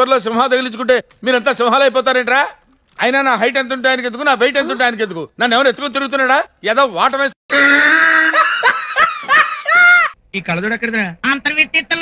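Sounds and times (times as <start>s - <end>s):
person laughing: 7.6s - 10.2s.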